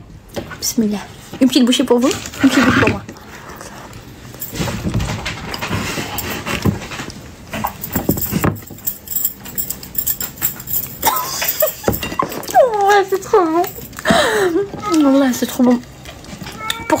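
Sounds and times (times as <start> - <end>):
breathing: 14.0 - 14.7.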